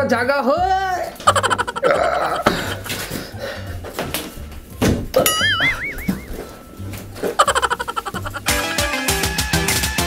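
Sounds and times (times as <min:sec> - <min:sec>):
background music with low beat: 0:00.6 - 0:10.0
cartoon wobbling tone effect: 0:05.3 - 0:06.4, 0:07.4 - 0:08.5.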